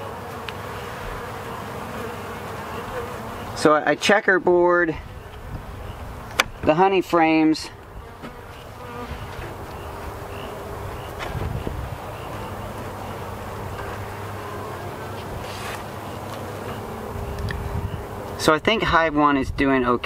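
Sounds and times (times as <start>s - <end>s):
honey bees buzzing: 0.0s - 19.0s.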